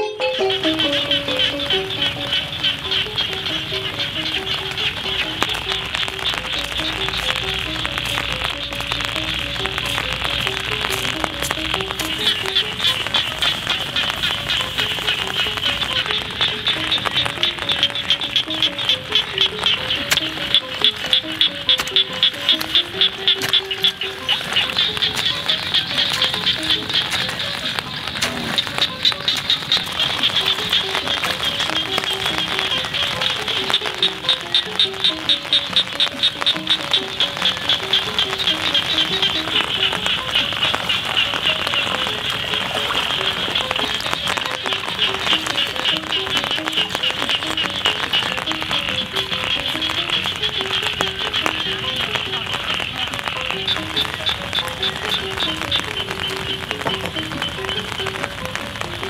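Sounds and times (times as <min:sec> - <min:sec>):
background music with short notes: 0:00.0 - 0:59.0
chorus of frogs calling: 0:00.0 - 0:59.0.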